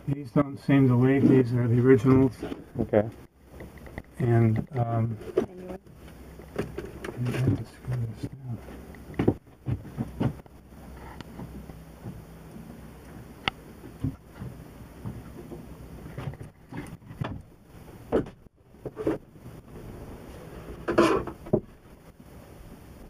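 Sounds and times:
knocks and clunks: 0:06.4 - 0:10.5, 0:13.5 - 0:19.3.

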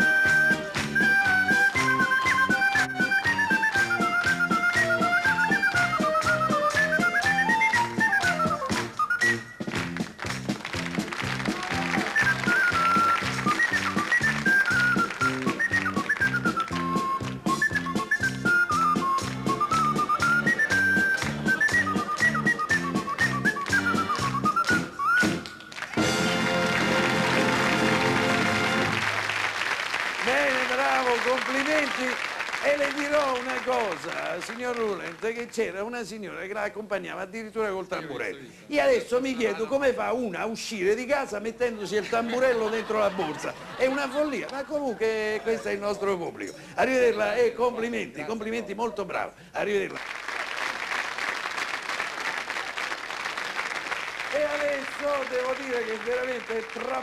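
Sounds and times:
applause: 0:00.0 - 0:01.9, 0:09.7 - 0:17.5, 0:20.6 - 0:35.6, 0:49.7 - 0:57.0
high whistle-like wind instrument melody: 0:00.0 - 0:09.7, 0:11.8 - 0:26.7
band playing bouncy rhythm: 0:00.0 - 0:29.4
man speaking: 0:30.2 - 0:50.0, 0:54.3 - 0:57.0.

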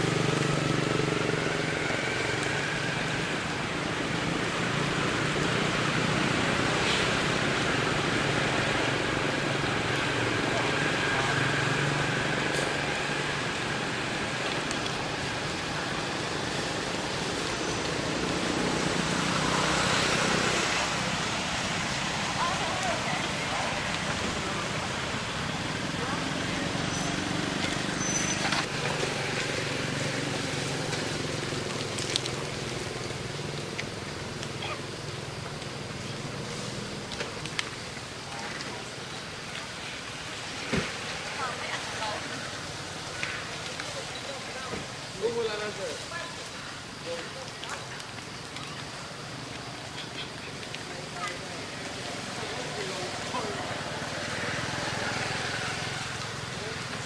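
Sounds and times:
road traffic noise: 0:00.0 - 0:57.0.

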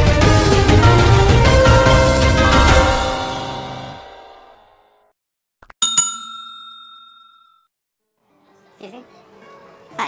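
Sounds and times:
bright bell ding: 0:05.8 - 0:07.7.

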